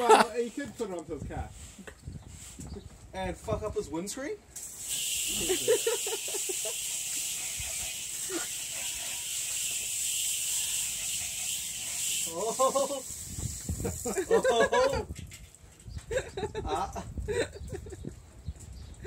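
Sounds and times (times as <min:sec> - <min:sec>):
high-pitched hiss: 0:04.6 - 0:14.3.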